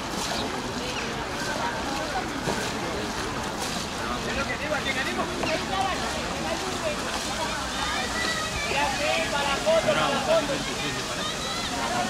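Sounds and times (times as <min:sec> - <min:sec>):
water noise: 0:00.0 - 0:12.0
wind: 0:00.0 - 0:12.0.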